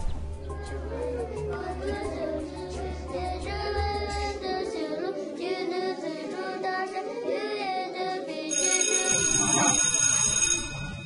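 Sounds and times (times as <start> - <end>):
electric school bell ringing: 8.5 - 11.0.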